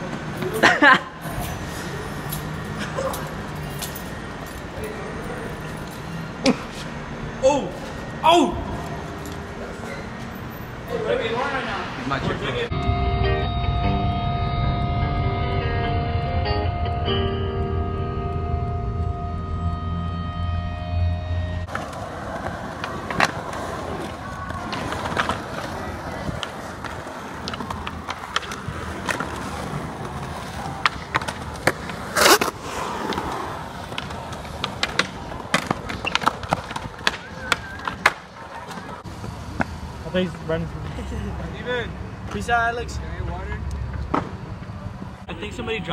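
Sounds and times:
skateboard wheels rolling on concrete: 0:00.0 - 0:45.9
music with heavy bass: 0:12.7 - 0:21.7
skateboard clacks and impacts: 0:21.7 - 0:39.7.

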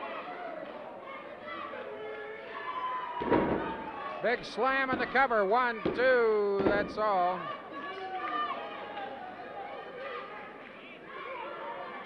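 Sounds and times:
crowd murmur: 0:00.0 - 0:12.0
body slamming onto ring mat: 0:03.2 - 0:03.9.

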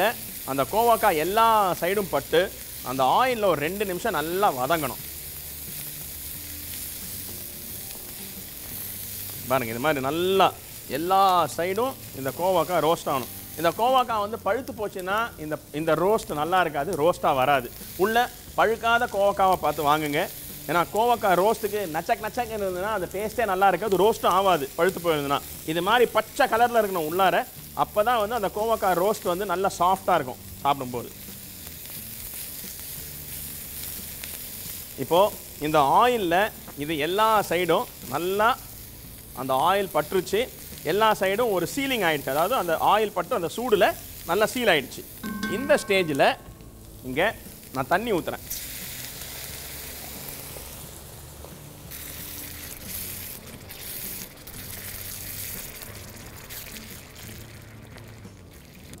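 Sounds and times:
vegetables sizzling in oil: 0:00.0 - 0:59.0
man speaking: 0:45.3 - 0:46.4.

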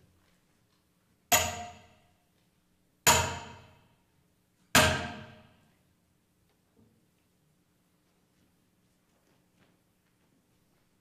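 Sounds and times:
hammer striking metal nail: 0:01.3 - 0:02.0, 0:03.1 - 0:03.8, 0:04.8 - 0:05.4.

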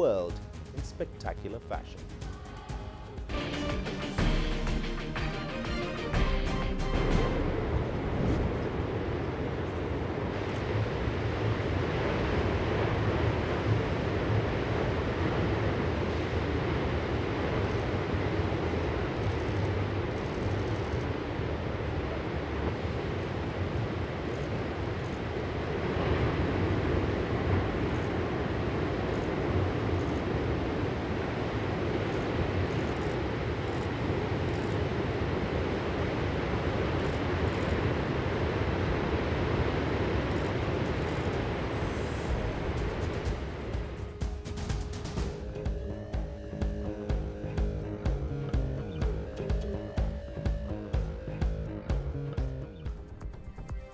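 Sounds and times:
ocean waves breaking: 0:00.0 - 0:53.9.

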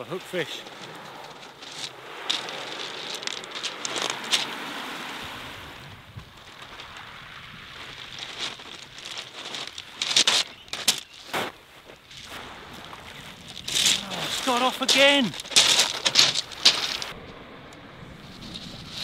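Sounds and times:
waves washing over shingle: 0:00.0 - 0:17.4
pebbles crunching: 0:00.2 - 0:05.0, 0:06.2 - 0:17.2
wind on microphone: 0:03.2 - 0:10.1, 0:15.3 - 0:19.0.

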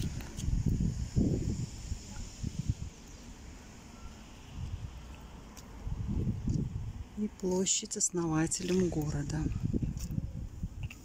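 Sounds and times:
wind buffeting microphone: 0:00.0 - 0:03.0, 0:05.8 - 0:07.4, 0:08.3 - 0:11.0.

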